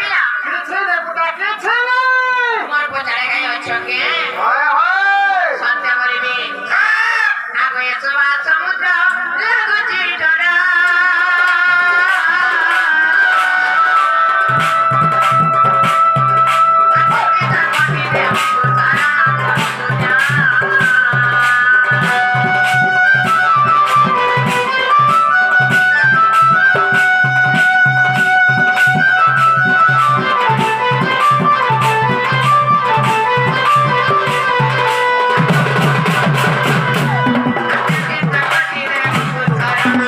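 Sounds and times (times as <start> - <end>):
keyboard melody: 12.9 - 38.6.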